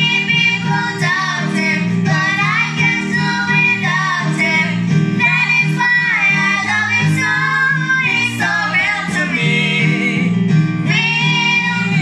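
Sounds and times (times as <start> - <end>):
woman and girls singing worship song: 0.0 - 12.0.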